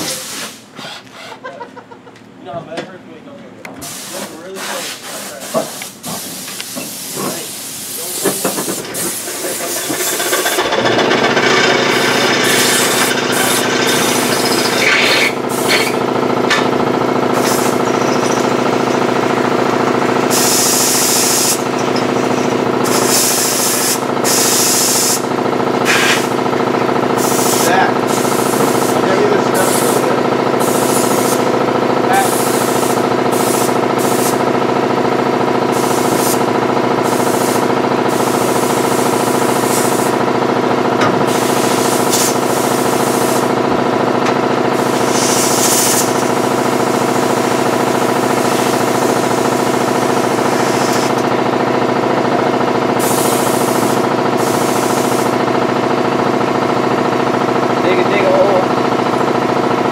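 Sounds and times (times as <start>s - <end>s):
compressed air hissing from hose: 0.0s - 1.3s, 3.8s - 9.8s, 20.3s - 21.6s, 22.8s - 25.2s, 25.8s - 26.3s, 32.2s - 34.4s, 41.3s - 43.5s, 44.8s - 46.2s, 53.0s - 55.3s
steady mechanical hum: 0.0s - 59.9s.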